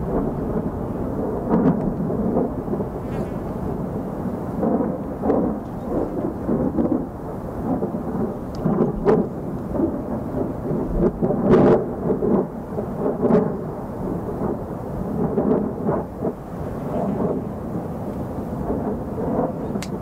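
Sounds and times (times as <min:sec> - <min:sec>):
wind roaring and buffeting microphone: 0:00.0 - 0:20.0.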